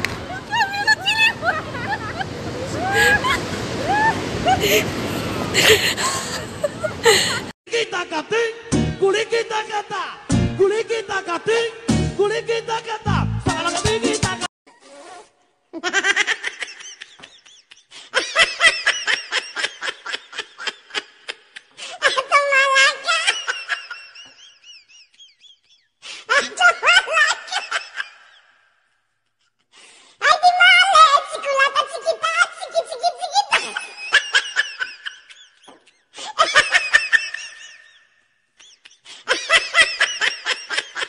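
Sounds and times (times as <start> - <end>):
high-pitched giggling laughter: 0.3 - 4.9, 5.5 - 7.5, 15.8 - 28.4, 30.2 - 38.0, 38.6 - 41.0.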